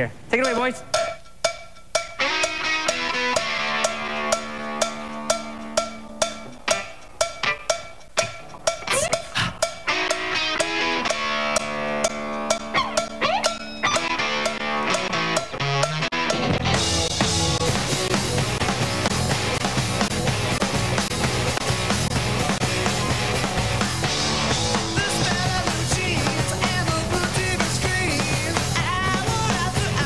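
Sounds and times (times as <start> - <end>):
rock band playing live: 2.1 - 30.0.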